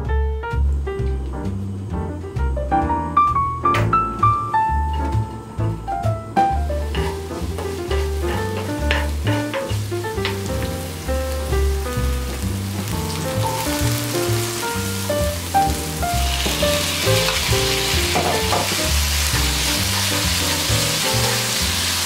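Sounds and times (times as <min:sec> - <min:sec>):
piano music: 0:00.0 - 0:22.0
onions sizzling in hot oil: 0:06.5 - 0:22.0.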